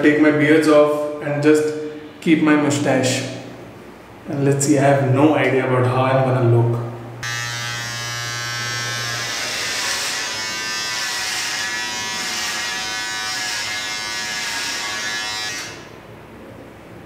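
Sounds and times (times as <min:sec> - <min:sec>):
electric beard trimmer buzzing: 0:07.2 - 0:15.9.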